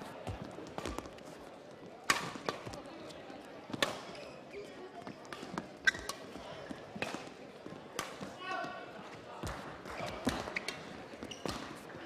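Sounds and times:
shoes squeaking on court: 2.3s - 7.3s, 10.0s - 12.0s.

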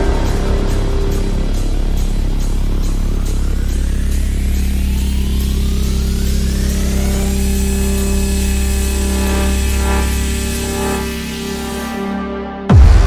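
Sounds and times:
rising synth sweep: 0.0s - 12.7s
deep bass drone: 0.0s - 13.0s.

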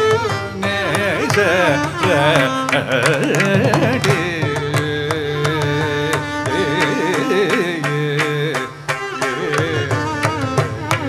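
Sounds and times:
man singing ornamented line: 0.2s - 11.0s.

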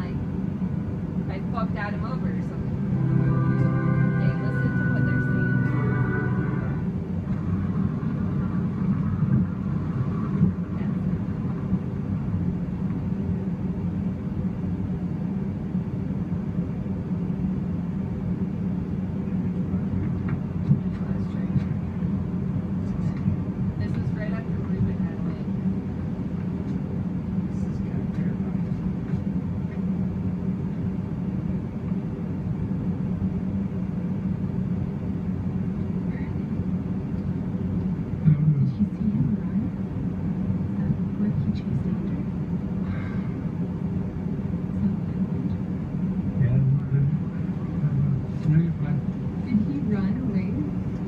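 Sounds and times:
low rumble with hum: 0.0s - 51.0s.

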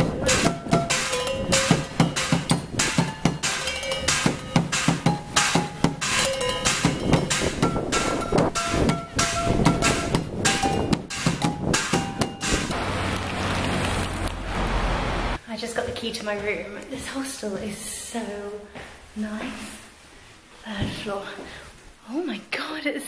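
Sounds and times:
drumming on pots and buckets: 0.0s - 12.8s
pans ringing: 0.0s - 12.8s
street noise: 0.0s - 16.5s.

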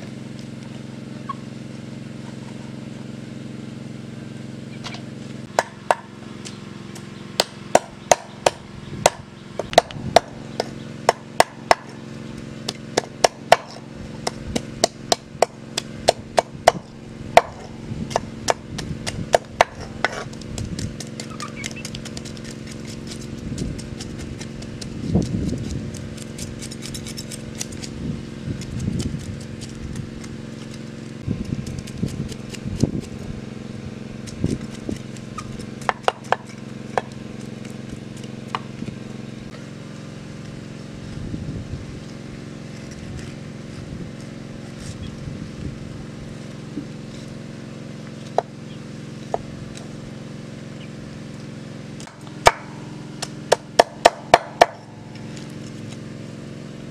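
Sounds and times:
steady low hum: 0.0s - 56.9s
knife scraping fish scales: 21.0s - 28.0s.

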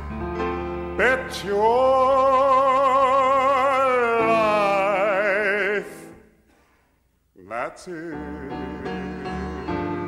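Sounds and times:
man singing long note with vibrato: 1.0s - 6.3s, 7.4s - 10.0s.

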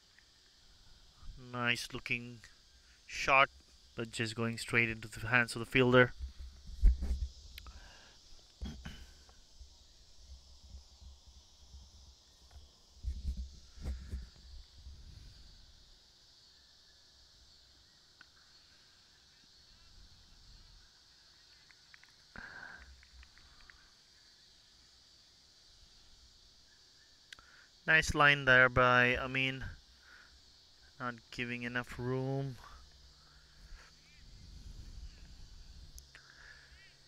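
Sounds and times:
high-pitched hum of insects: 0.0s - 37.0s.

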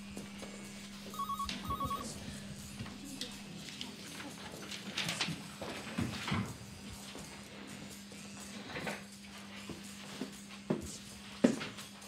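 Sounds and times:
steady low hum: 0.0s - 4.0s
electronic telephone ringing: 0.9s - 2.8s.

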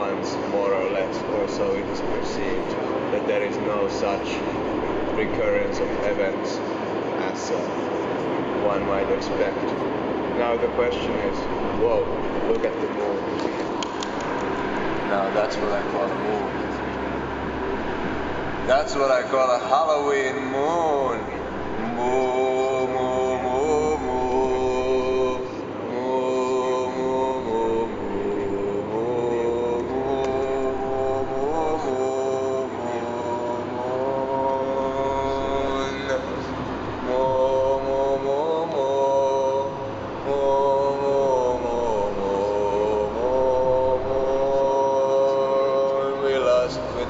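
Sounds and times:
man chanting: 0.0s - 14.0s, 14.6s - 17.4s, 18.5s - 47.0s
car driving hum: 0.0s - 47.0s.

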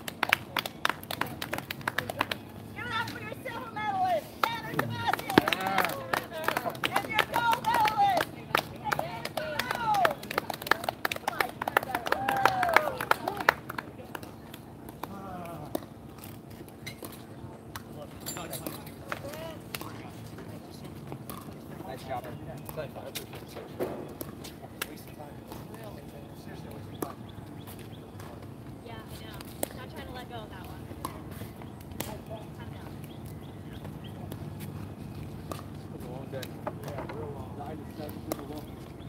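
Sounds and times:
distant voices: 0.0s - 39.0s
low background noise: 0.0s - 39.0s.

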